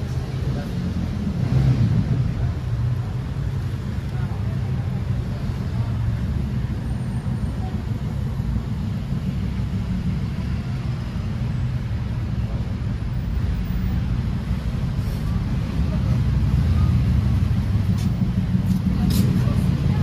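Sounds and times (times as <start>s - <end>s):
low rumble of city traffic: 0.0s - 20.0s.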